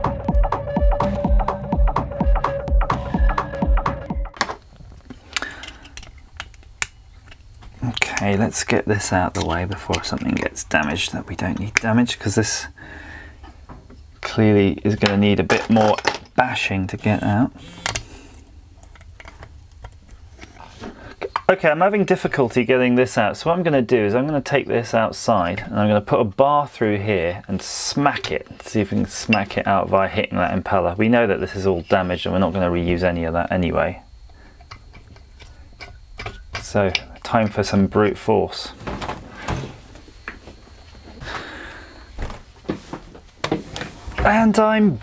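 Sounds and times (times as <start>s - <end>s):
metal parts clicking and knocking: 5.4s - 8.4s, 15.0s - 16.4s.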